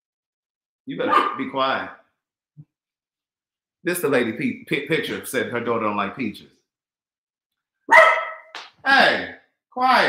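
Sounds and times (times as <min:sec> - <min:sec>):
dog barking: 0:01.0 - 0:01.5, 0:07.9 - 0:08.5.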